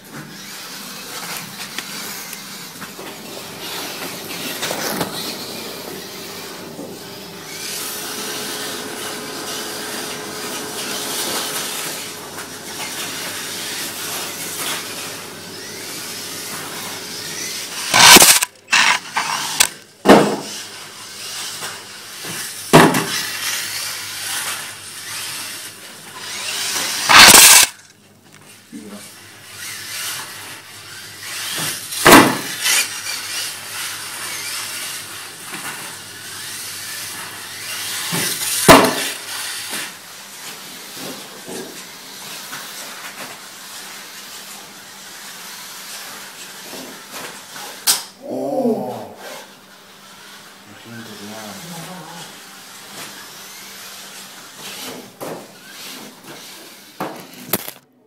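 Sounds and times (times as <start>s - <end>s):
rc car motors whining: 0.0s - 57.8s.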